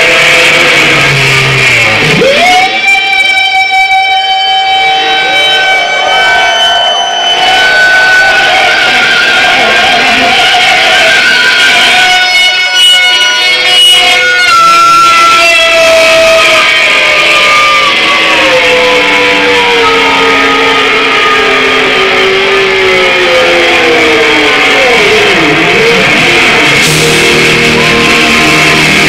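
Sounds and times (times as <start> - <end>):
electric guitar solo: 0.0 - 29.0
live rock band: 0.0 - 29.0.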